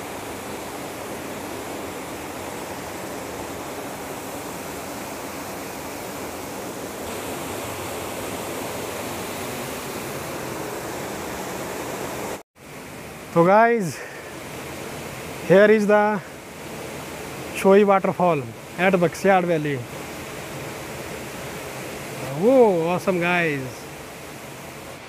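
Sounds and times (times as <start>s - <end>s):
waterfall rushing: 0.0s - 25.0s.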